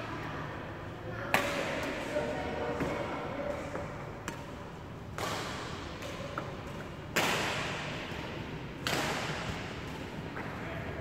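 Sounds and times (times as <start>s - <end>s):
racket hitting shuttlecock: 2.8s - 10.6s.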